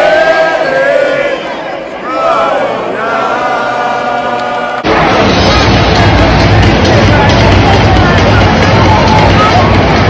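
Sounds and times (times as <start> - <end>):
crowd singing and chanting: 0.0 - 10.0
song over sound system: 4.2 - 10.0.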